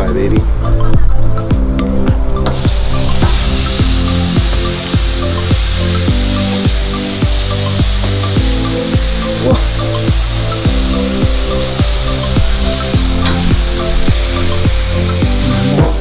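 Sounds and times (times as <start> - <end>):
electronic music with steady beat: 0.0 - 16.0
steaks sizzling on a grill: 2.4 - 16.0.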